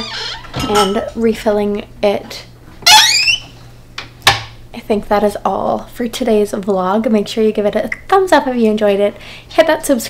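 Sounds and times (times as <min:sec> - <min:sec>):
cabinet door squeak: 0:00.0 - 0:00.9, 0:02.8 - 0:03.6.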